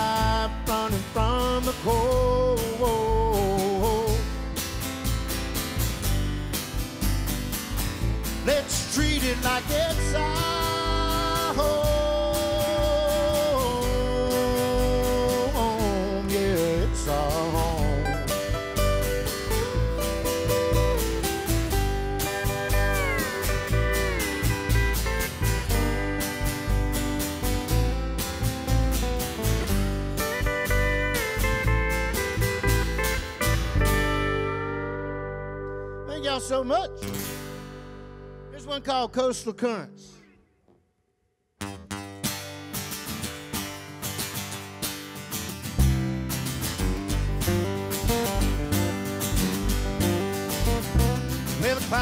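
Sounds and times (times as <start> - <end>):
acoustic guitar picking: 0.0 - 39.8, 41.6 - 52.0
upright bass: 0.0 - 40.3, 41.6 - 52.0
pedal steel guitar sliding: 18.2 - 35.1.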